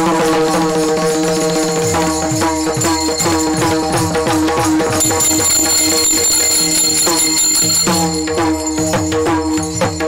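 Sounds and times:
hand cymbals clashing: 0.0 - 10.0
drum strokes: 0.1 - 10.0.

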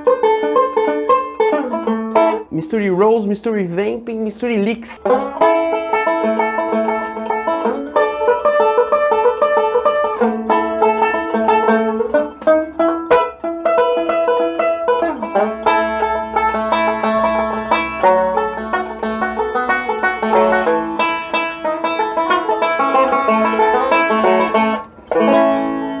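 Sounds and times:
banjo picking: 0.0 - 26.0.

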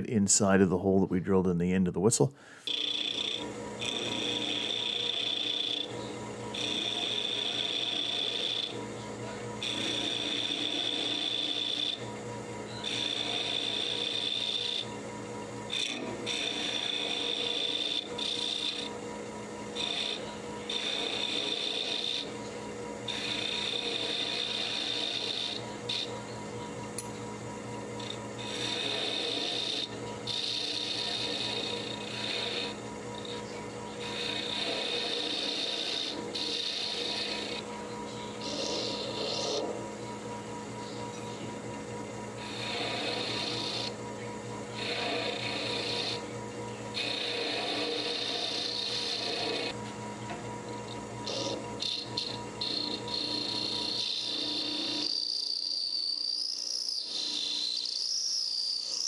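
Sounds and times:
wood lathe humming: 2.4 - 59.0
gouge cutting spinning wood: 2.6 - 26.4, 27.8 - 40.2, 42.3 - 44.0, 44.6 - 49.8, 50.9 - 59.0.

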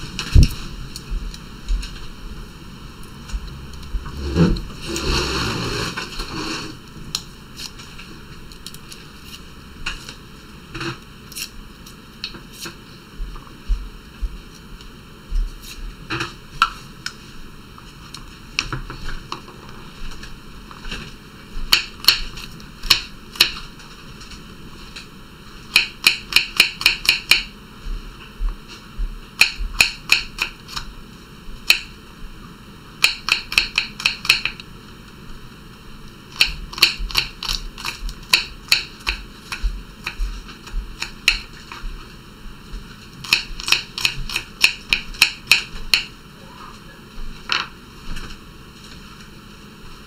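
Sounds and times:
knife chopping on wooden board: 36.4 - 40.3, 41.0 - 41.5, 43.2 - 46.1.

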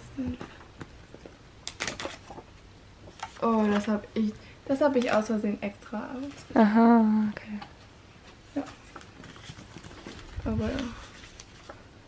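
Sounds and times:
stiff pages turning: 0.8 - 4.0, 8.4 - 11.9.

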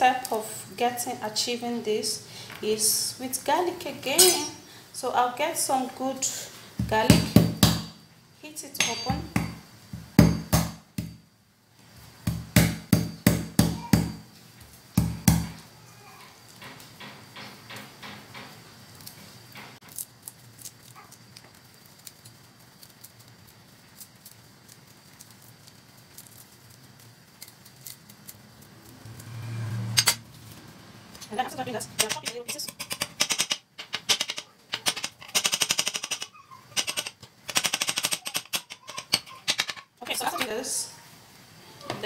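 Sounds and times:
garlic skins crackling: 19.8 - 29.4.

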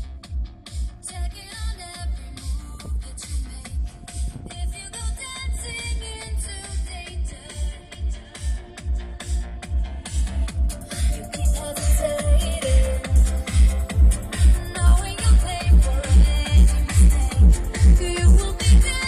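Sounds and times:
heavy bass beat thumping: 0.0 - 19.0
loud electronic dance music: 0.0 - 19.0.

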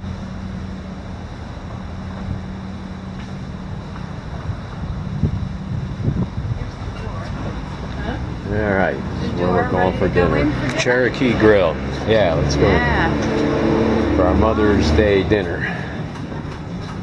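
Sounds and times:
low mechanical hum: 0.0 - 17.0
wind rumbling on microphone: 1.0 - 9.1.

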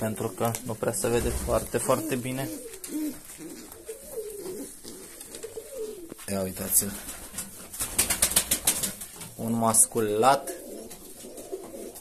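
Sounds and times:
pigeons cooing: 0.0 - 8.9, 10.1 - 12.0.

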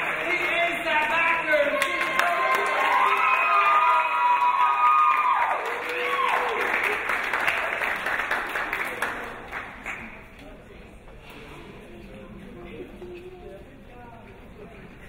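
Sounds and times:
audience clapping and cheering: 0.0 - 10.4.

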